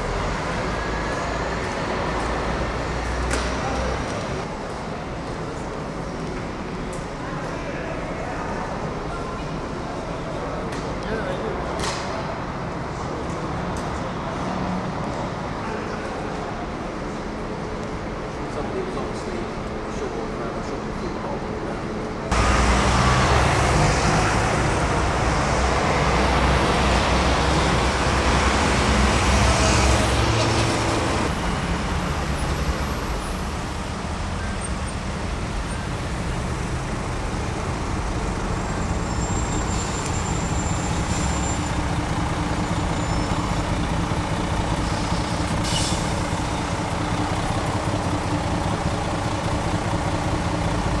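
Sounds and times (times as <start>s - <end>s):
vehicles driving past: 0.0s - 51.0s
brief sharp hiss: 45.6s - 46.1s.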